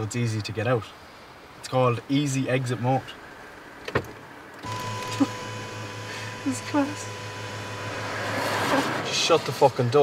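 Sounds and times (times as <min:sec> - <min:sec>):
power seat motor humming: 0:04.6 - 0:09.0.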